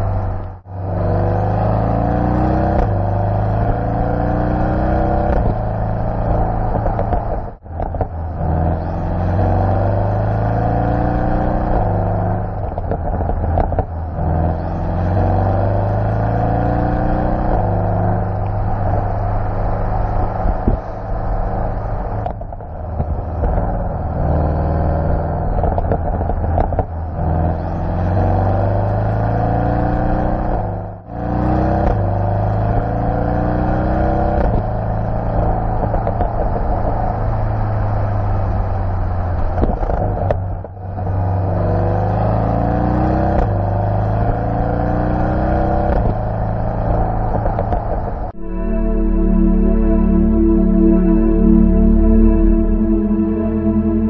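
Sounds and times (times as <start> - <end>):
car engine accelerating through gears: 0.0 - 54.0.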